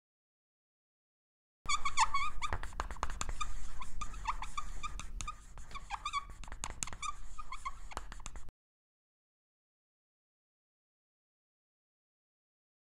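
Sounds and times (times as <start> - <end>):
marker pen squeaking on whiteboard: 1.7 - 8.5.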